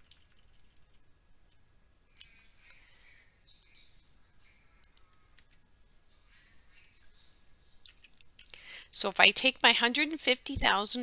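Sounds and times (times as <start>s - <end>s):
keyboard clicks: 0.0s - 2.4s, 4.8s - 5.6s, 6.7s - 7.0s
computer mouse clicks: 3.5s - 3.9s, 4.8s - 5.6s, 6.7s - 7.1s.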